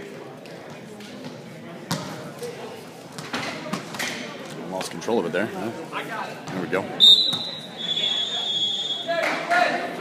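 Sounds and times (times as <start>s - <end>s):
low chatter in a gymnasium: 0.0s - 10.0s.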